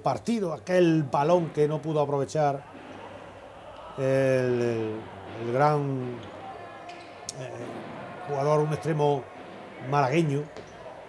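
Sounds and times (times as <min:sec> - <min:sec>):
low hall background: 0:00.0 - 0:11.0
ball bouncing on court floor: 0:05.2 - 0:11.0.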